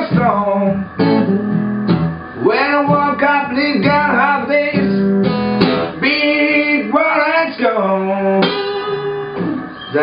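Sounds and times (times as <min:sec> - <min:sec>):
acoustic guitar lead: 0:00.0 - 0:10.0.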